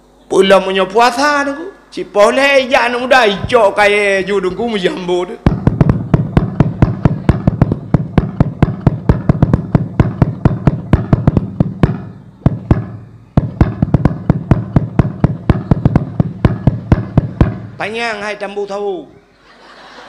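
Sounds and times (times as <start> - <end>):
rapid rhythmic hand beating: 4.3 - 18.0.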